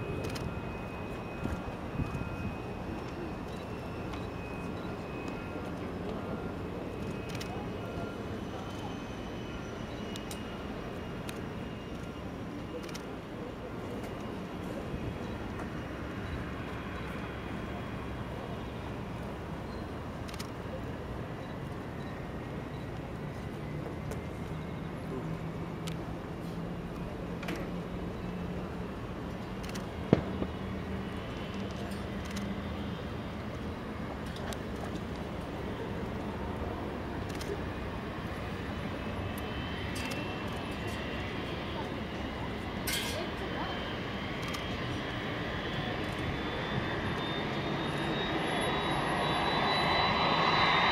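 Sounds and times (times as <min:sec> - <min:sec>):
faint high whine: 0:00.0 - 0:50.9
low rumble of engine noise: 0:00.0 - 0:50.9
distant jet rumble: 0:28.9 - 0:50.9.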